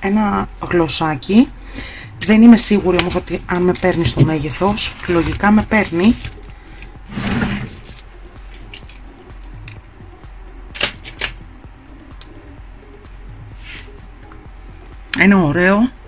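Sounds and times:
faint background music: 0.0 - 16.0
metal clasp clicks and clinks: 8.5 - 9.9, 10.8 - 11.5.

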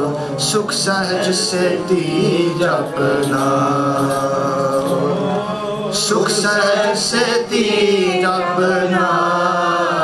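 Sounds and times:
voices holding sung note: 0.4 - 10.0.

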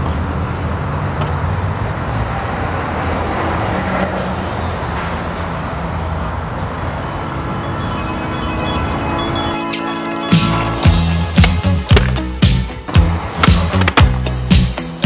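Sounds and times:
street traffic rumble: 0.0 - 15.0
music: 7.2 - 15.0.

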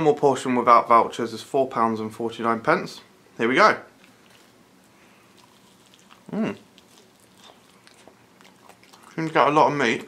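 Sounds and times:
person chewing: 3.9 - 10.0.

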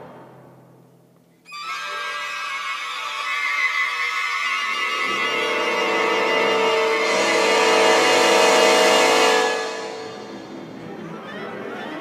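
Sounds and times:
high sustained note cluster: 1.5 - 10.4.

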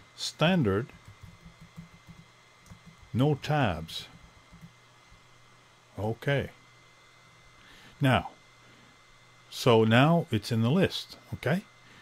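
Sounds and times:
faint keyboard typing: 0.9 - 3.2, 4.0 - 4.8.

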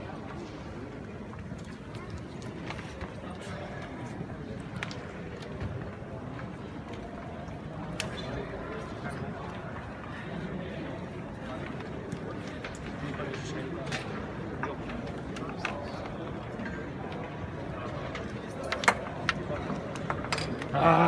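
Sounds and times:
crowd chatter in a hall: 0.0 - 21.0.

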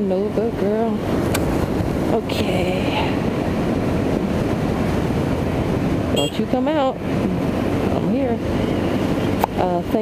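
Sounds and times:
road noise: 0.0 - 10.0
wind noise: 0.0 - 10.0.

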